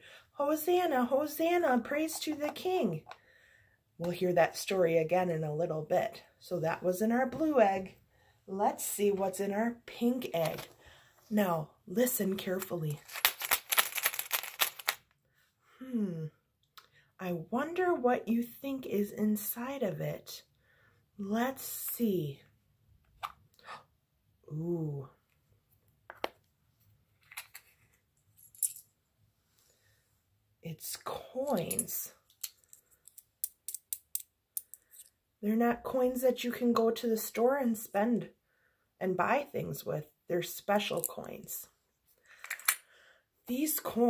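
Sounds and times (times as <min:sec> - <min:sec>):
coins rattling in plastic egg: 0:12.7 - 0:15.0.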